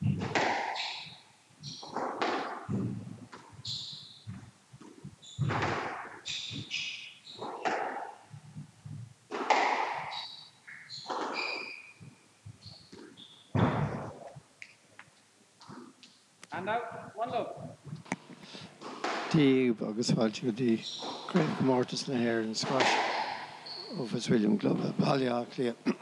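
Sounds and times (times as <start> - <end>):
squash ball hits: 0.0 - 8.6, 9.3 - 12.2, 12.9 - 14.3, 18.8 - 19.4, 20.9 - 23.6
shoes squeaking on wooden floor: 0.0 - 25.4.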